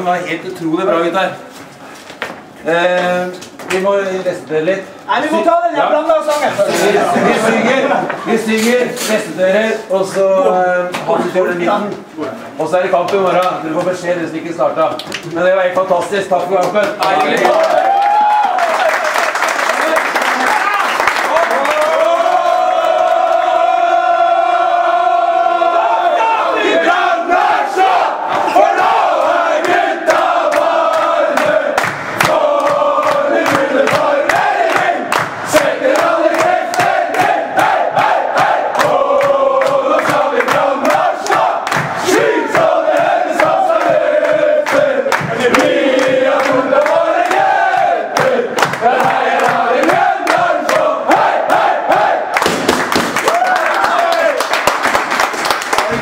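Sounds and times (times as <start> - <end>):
rhythmic hand clapping: 12.9 - 14.1, 14.9 - 22.1, 29.1 - 56.0
men singing a chant: 28.8 - 52.2.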